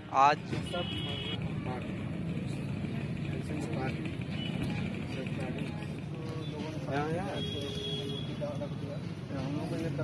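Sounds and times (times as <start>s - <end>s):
faint indistinct voices: 0.5s - 10.0s.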